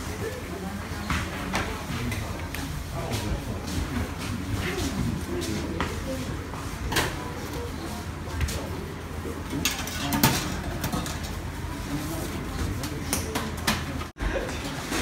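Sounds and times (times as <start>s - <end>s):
dishes and trays clinking: 9.5s - 11.5s.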